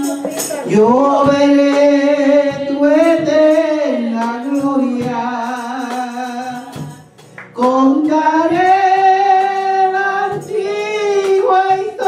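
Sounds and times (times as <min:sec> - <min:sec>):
woman singing: 0:00.0 - 0:05.3, 0:06.3 - 0:12.0.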